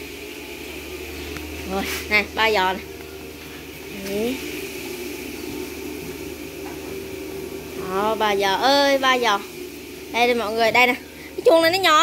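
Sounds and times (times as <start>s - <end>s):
low buzzing hum: 0.0s - 12.0s
woman speaking: 1.6s - 2.9s, 3.9s - 4.5s, 7.8s - 9.5s, 10.1s - 12.0s.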